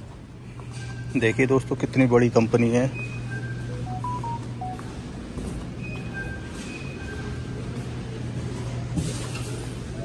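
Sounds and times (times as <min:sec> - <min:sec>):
steady low hum: 0:00.0 - 0:10.0
electronic beeping melody: 0:02.9 - 0:04.8.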